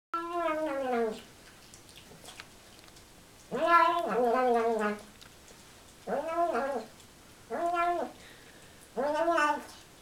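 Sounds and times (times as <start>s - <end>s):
cat meowing: 3.5s - 5.0s, 7.5s - 8.2s, 9.0s - 9.8s.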